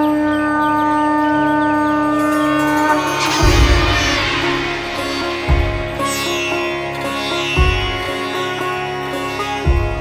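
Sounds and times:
horn note: 2.0 - 6.8.

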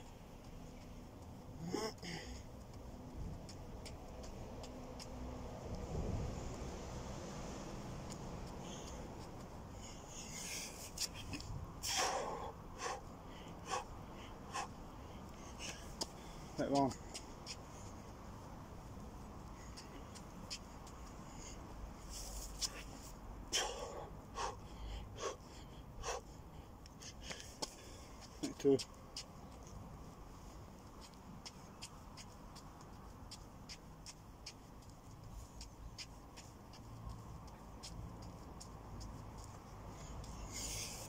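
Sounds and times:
man grunting: 1.6 - 2.3
man breathing hard: 1.6 - 2.6, 8.6 - 17.8, 22.6 - 28.3, 39.9 - 41.0.

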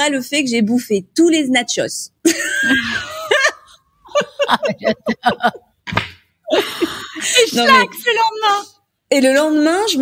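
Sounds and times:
woman laughing: 2.2 - 5.8, 6.5 - 7.9
woman speaking: 7.0 - 10.0.

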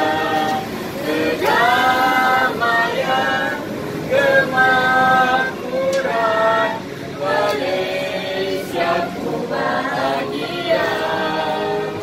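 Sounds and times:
group singing unaccompanied: 0.0 - 12.0.

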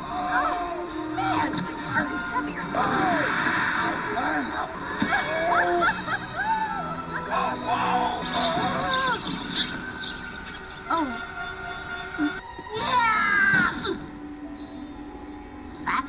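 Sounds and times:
music with held notes: 0.0 - 3.1, 4.8 - 16.0
high wordless cries: 0.0 - 14.4
falling wail: 2.7 - 9.2.

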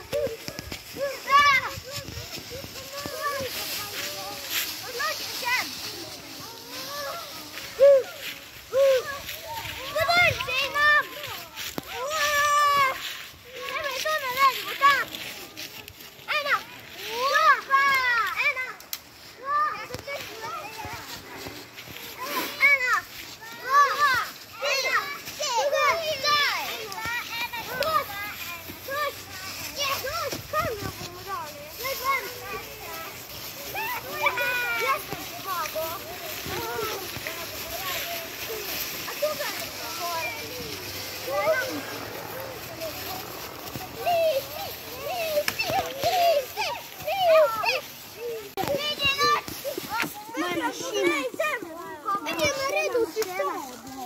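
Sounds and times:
dry leaves rustling underfoot: 0.0 - 54.0
young children calling and chattering: 0.0 - 54.0.

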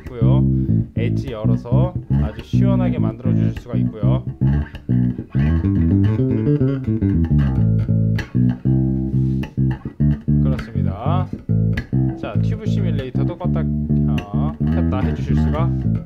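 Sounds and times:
electric bass guitar playing: 0.0 - 16.0.

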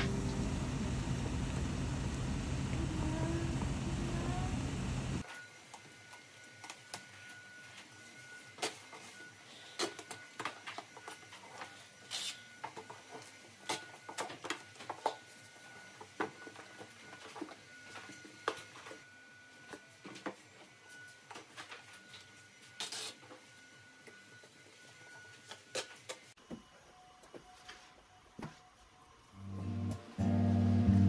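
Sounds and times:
packing tape screech: 12.0 - 12.5, 22.8 - 23.3.

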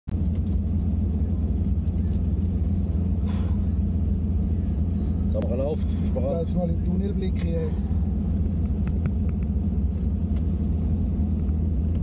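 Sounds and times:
car engine idling in cabin: 0.1 - 12.0.

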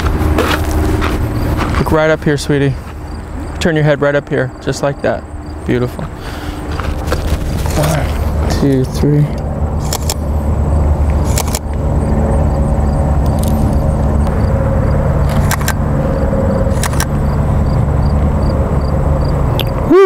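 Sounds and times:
road traffic rumble: 0.0 - 20.0
sharp clicks: 9.4 - 10.3, 11.1 - 11.8, 13.2 - 14.4, 15.3 - 15.8, 16.7 - 17.1.

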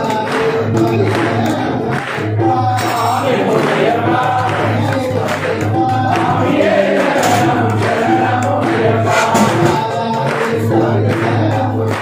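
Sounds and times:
group singing devotional song: 0.0 - 12.0.

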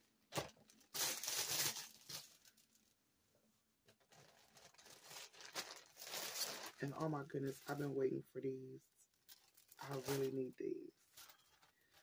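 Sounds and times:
packaging rustling: 0.3 - 3.0, 3.9 - 7.9, 9.2 - 12.0.

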